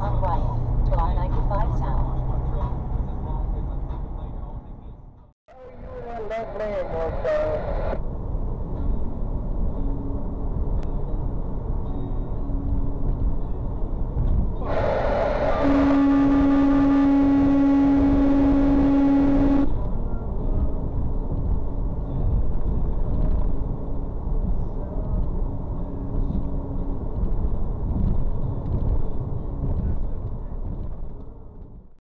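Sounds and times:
truck road and engine rumble: 0.0 - 32.0
truck air horn blast: 14.6 - 19.7.

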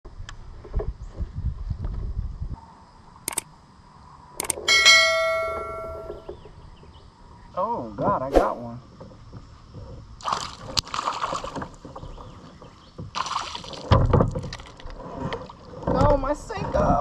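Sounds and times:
sharp clicks: 3.3 - 3.5, 4.4 - 4.6
bright bell chime: 4.7 - 6.3.

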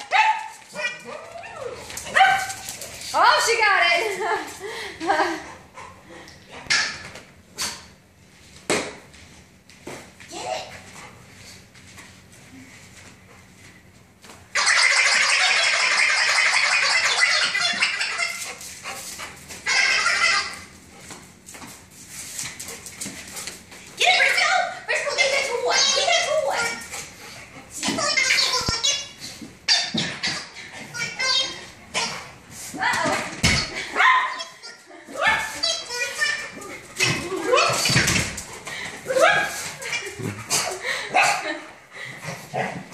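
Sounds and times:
dog toy giggling: 14.6 - 18.6.

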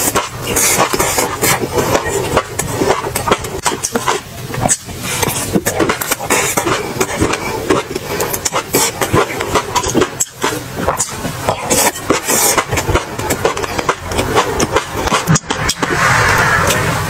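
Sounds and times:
person chewing wet food: 0.0 - 16.0
hissing slurp: 0.0 - 17.0.

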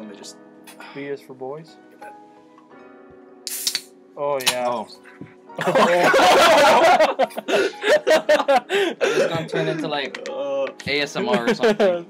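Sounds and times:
quiet background music: 0.0 - 12.0
beer can hiss: 3.4 - 3.9.

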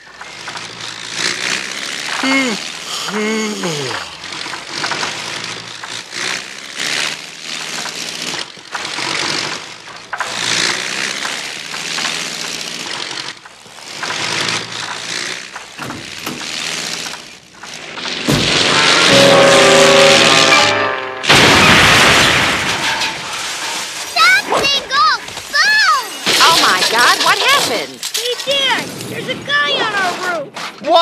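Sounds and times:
cartoon propeller plane engine: 0.0 - 21.6, 23.9 - 30.3
orchestral score: 19.1 - 21.3.

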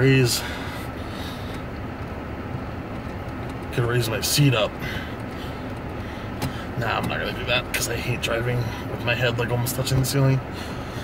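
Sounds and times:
car engine idling hum: 0.0 - 11.0.

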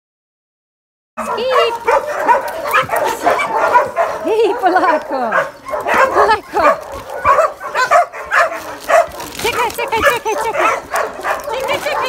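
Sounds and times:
dogs yipping whining and barking: 1.2 - 12.0.

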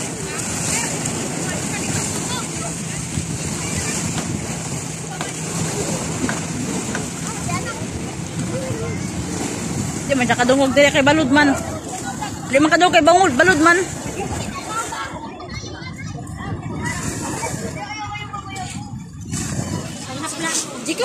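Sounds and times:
faint voices: 0.0 - 21.0
waves on a shore: 0.0 - 21.0
wind buffeting microphone: 0.0 - 21.0.

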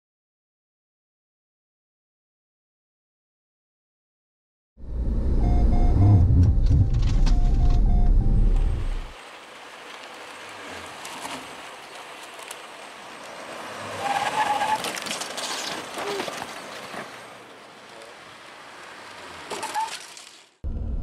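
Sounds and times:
car road and engine rumble: 4.8 - 21.0
outdoor vehicle noise: 4.8 - 21.0
electronic warning beep: 5.3 - 9.1.

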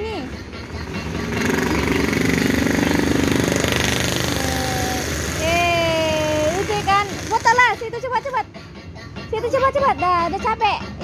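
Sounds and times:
motorcycle engine running: 0.0 - 8.1.

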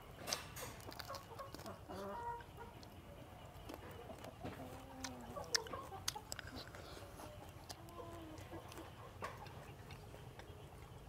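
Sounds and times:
chickens clucking: 0.0 - 11.0.

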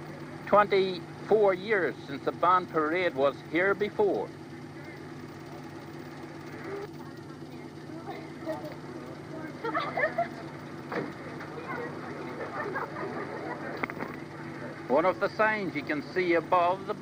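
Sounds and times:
faint voices talking: 0.0 - 17.0
steady low hum: 0.0 - 17.0.

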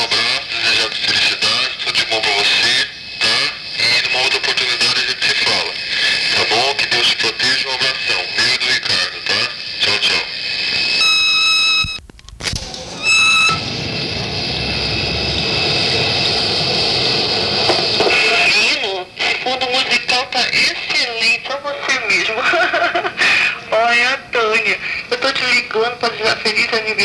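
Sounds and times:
line hiss: 0.0 - 12.0
electronic beep: 11.0 - 12.0.

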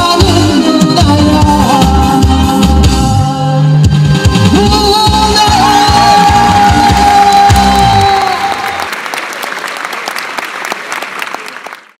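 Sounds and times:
song with drum beat: 0.0 - 8.7
audience applause: 5.9 - 12.0.

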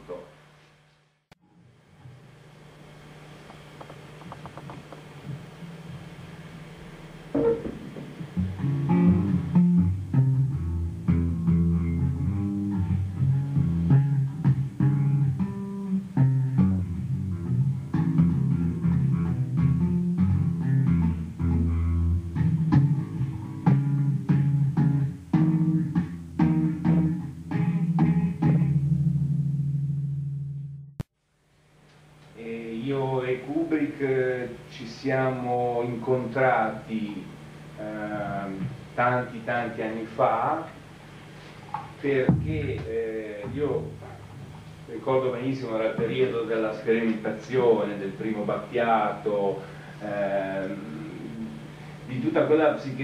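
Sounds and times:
electric bass plucked notes: 3.6 - 31.1, 35.3 - 53.0.

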